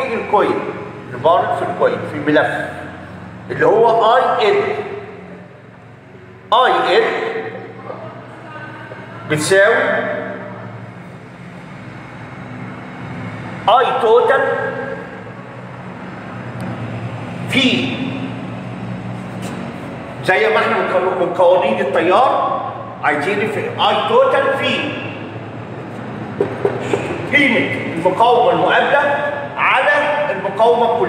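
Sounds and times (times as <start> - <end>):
low background hum: 0.0 - 31.0
steady rumbling background noise: 0.0 - 31.0.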